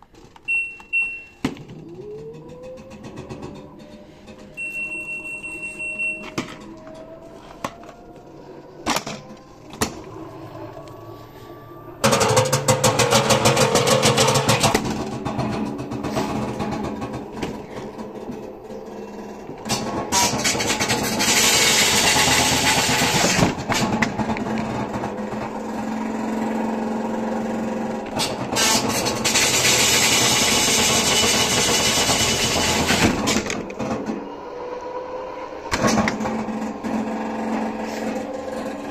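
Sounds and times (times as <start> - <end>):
washing machine whirring and hissing: 0.0 - 38.9
faint rising whine: 1.6 - 14.1
drum and motor rattle: 12.0 - 34.1, 35.7 - 38.9.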